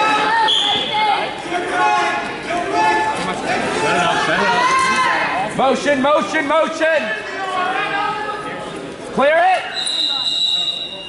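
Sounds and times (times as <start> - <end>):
voices of spectators: 0.0 - 11.0
referee whistle blast: 9.7 - 11.0.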